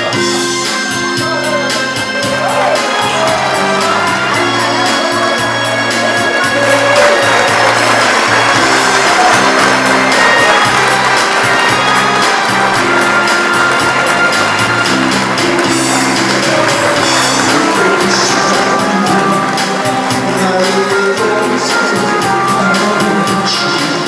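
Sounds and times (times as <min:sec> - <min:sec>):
pop backing track with bass: 0:00.0 - 0:24.0.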